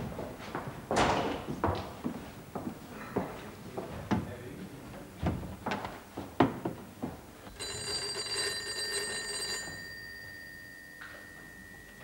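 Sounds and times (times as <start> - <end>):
telephone bell ringing: 7.5 - 12.0.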